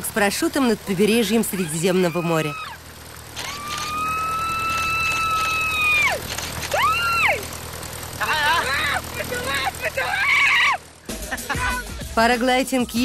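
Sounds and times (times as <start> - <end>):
person screaming and whooping: 3.5 - 7.4, 10.0 - 10.8.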